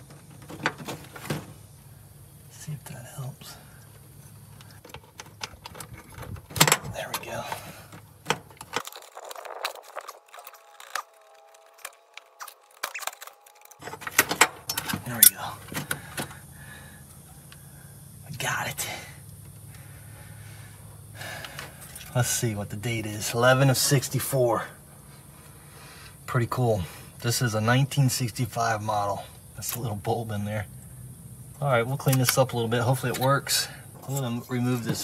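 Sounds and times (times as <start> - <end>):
light metallic rattles: 3.8 - 9.6.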